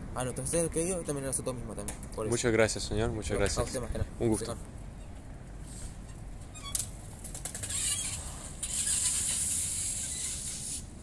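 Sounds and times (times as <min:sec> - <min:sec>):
bicycle tyres hissing: 0:05.6 - 0:06.2, 0:07.5 - 0:11.0.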